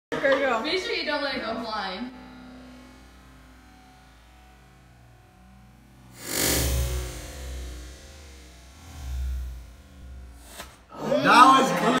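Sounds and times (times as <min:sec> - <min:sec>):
low hum: 0:00.1 - 0:12.0
deep slowed-down whoosh of knife: 0:02.1 - 0:10.9.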